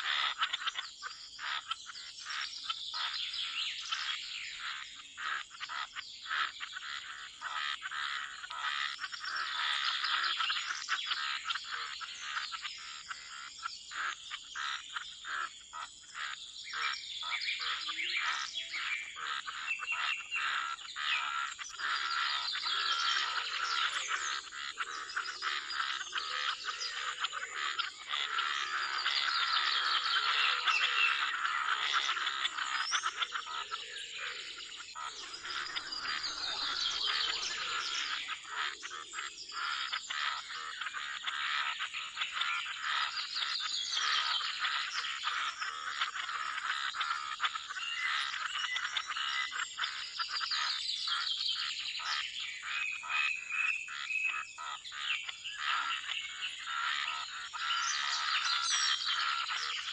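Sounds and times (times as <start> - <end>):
bird chirps: 0.0 - 59.9
frogs croaking: 0.0 - 59.9.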